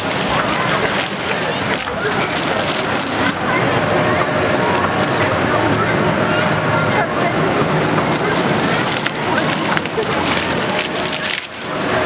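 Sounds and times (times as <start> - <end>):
crowd chattering: 0.0 - 12.0
fountain jets splashing into pool: 0.0 - 12.0.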